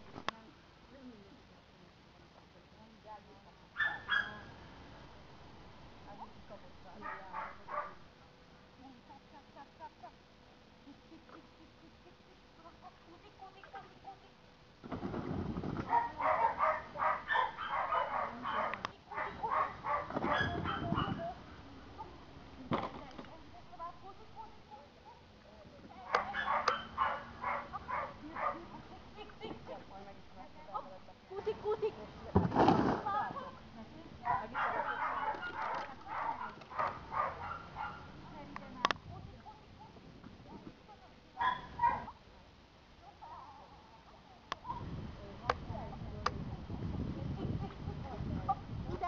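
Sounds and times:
dog barking: 3.8s - 4.5s, 7.0s - 8.0s, 15.9s - 21.3s, 26.1s - 28.6s, 34.2s - 38.1s, 41.4s - 42.1s.

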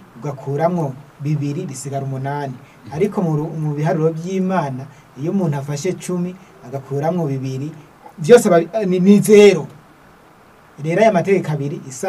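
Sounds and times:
man speaking: 0.2s - 9.8s, 10.8s - 12.0s.

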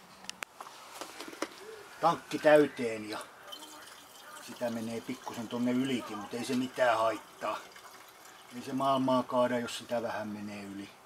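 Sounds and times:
pigeon cooing: 1.4s - 2.8s.

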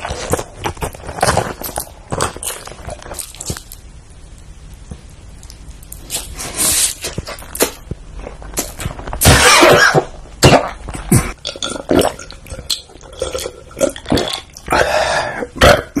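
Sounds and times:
mouth and throat sounds: 6.1s - 16.0s
man burping loudly: 13.1s - 16.0s.

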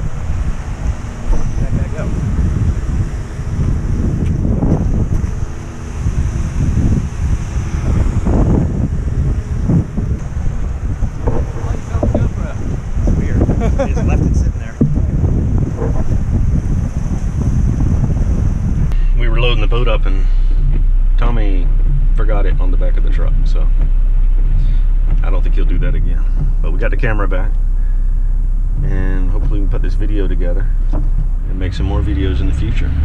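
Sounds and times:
wind buffeting microphone: 0.0s - 33.0s.

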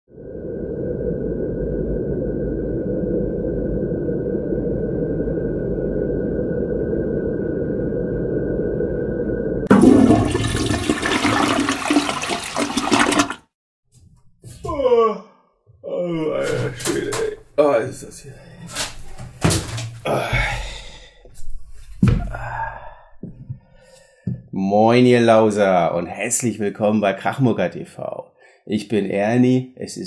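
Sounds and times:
low rumbling drone: 0.1s - 9.7s
loud rushing flushing noise: 9.7s - 13.5s.

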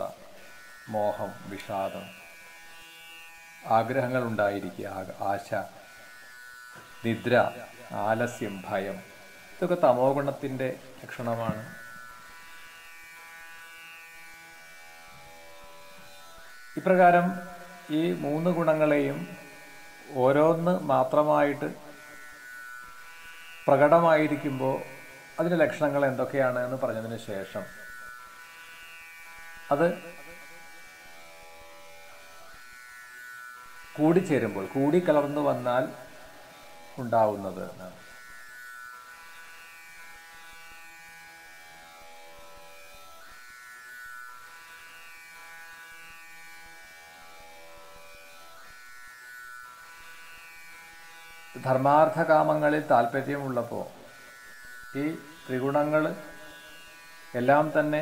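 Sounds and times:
steady faint buzz: 0.0s - 32.6s.

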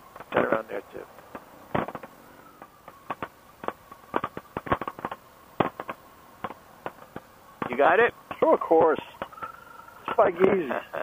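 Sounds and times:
sharp pops and clicks: 0.0s - 10.3s
faint steady tone: 0.0s - 11.0s.

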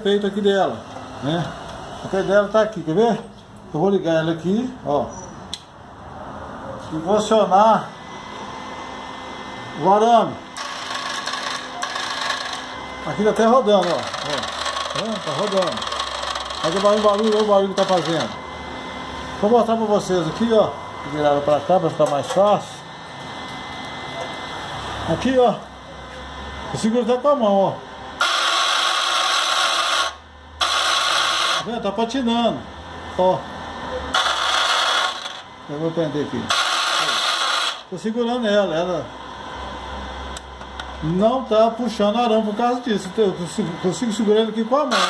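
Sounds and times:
welder wire-feed motor running: 6.9s - 45.0s.

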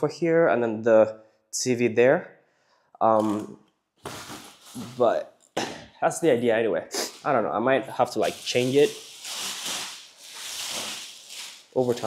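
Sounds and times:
plastic wrapping rustling: 3.2s - 5.2s, 7.1s - 12.0s.

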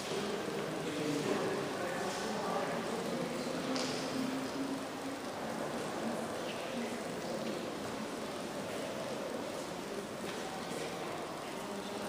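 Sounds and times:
distant murmur of voices: 0.0s - 12.0s
room noise hiss: 0.0s - 12.0s.

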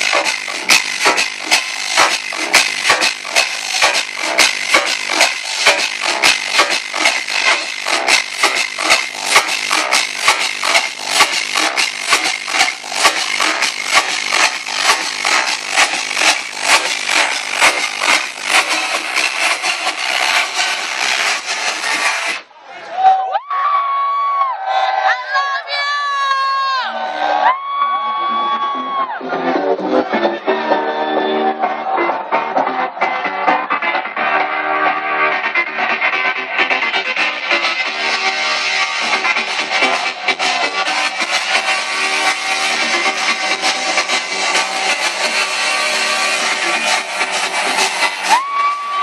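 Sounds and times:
steady kick beat: 0.0s - 22.4s, 36.4s - 49.0s
club trance music: 0.0s - 22.5s, 28.0s - 49.0s.

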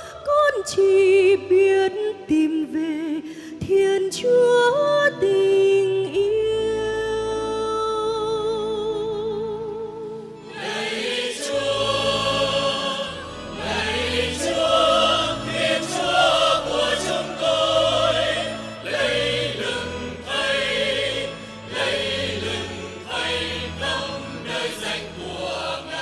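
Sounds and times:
choir singing a hymn: 10.4s - 26.0s.

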